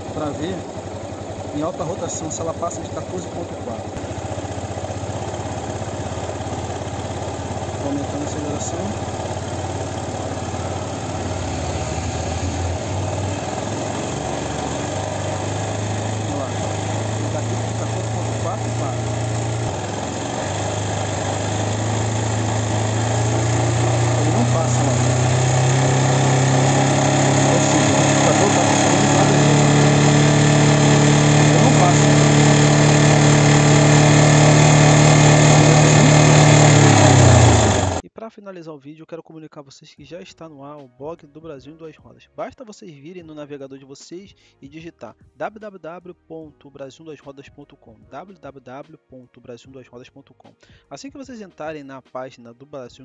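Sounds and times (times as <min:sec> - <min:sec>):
motorcycle engine revving: 0:00.0 - 0:38.0.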